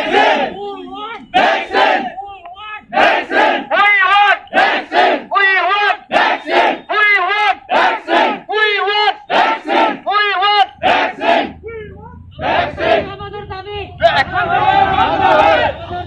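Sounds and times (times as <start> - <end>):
crowd chanting slogans: 0.0 - 2.2, 2.8 - 11.6, 12.3 - 13.2, 14.0 - 16.0.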